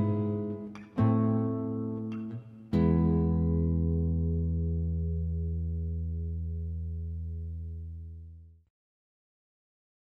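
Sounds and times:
guitar chord sustaining: 0.0 - 8.3.

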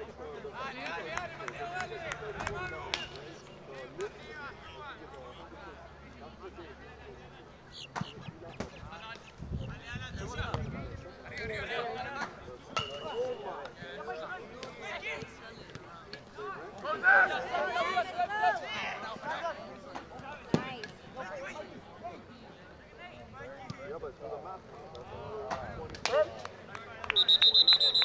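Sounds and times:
people shouting outdoors: 16.5 - 19.5.

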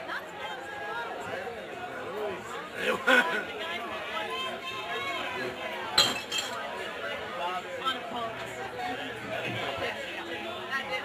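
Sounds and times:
crowd chatter: 0.0 - 11.0
glass clink: 6.0 - 6.6.

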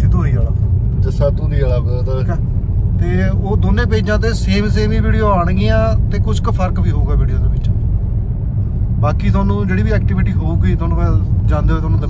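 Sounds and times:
road and engine rumble in car: 0.0 - 12.0
man talking: 9.0 - 12.0.

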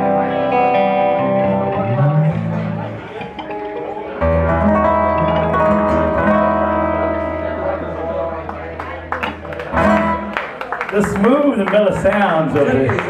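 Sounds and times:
guitars and mandolin ringing chord: 0.0 - 10.4.

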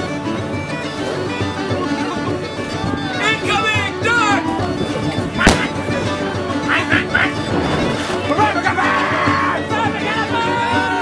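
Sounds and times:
cannon shot bang: 5.4 - 5.8.

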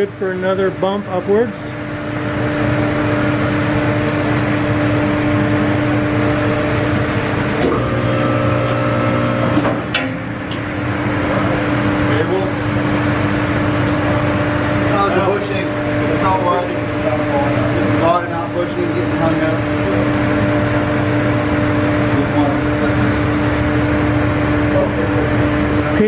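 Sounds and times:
hydraulic lift power unit humming: 0.0 - 26.0.

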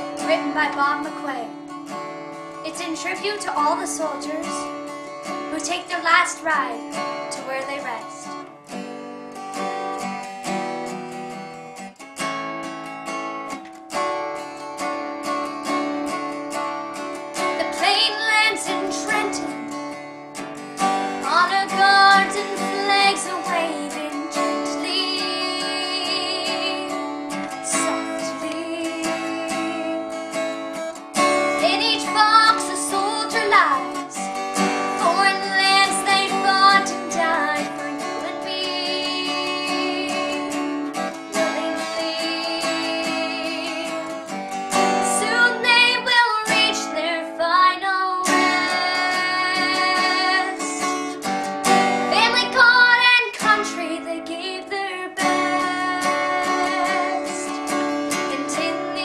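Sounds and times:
girl singing: 0.0 - 1.9, 2.6 - 8.5, 17.4 - 19.8, 20.8 - 59.0
acoustic guitar strummed: 0.0 - 59.0.

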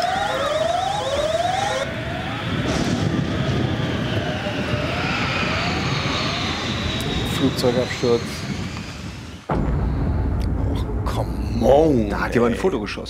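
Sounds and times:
whooping alarm tone: 0.0 - 9.4
fast high warble: 0.0 - 9.5
rushing roar with sweeping whine: 0.0 - 11.1.

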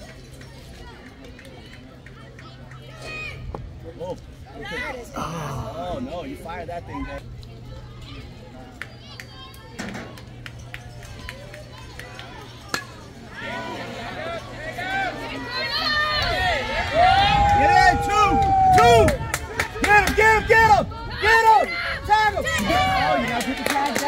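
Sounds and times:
long drawn-out yell: 5.0 - 6.1, 14.8 - 19.2
spectators shouting and cheering: 6.7 - 24.0.

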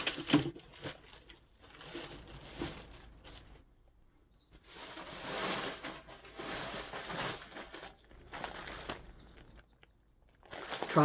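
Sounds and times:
plastic bag crinkling: 0.0 - 3.6, 4.5 - 11.0.

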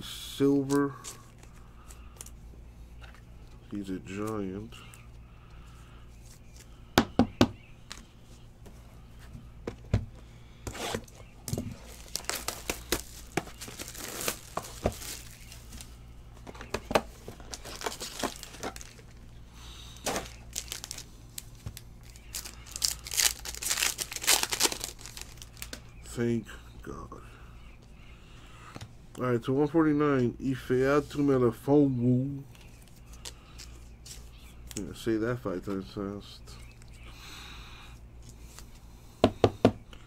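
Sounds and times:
low steady hum: 0.0 - 40.0
card wrappers crinkling and tearing: 10.9 - 16.0, 16.6 - 26.0.

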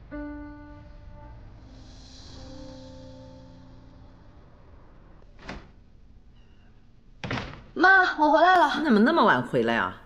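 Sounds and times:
door shutting with a thunk: 5.4 - 5.8, 7.2 - 7.8.

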